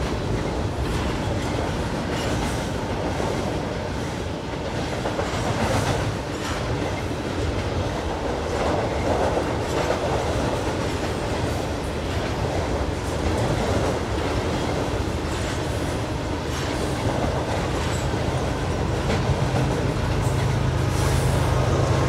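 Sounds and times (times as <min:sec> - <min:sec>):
freight train rumbling over bridge: 0:00.0 - 0:22.0
train wheel clacks: 0:00.0 - 0:22.0.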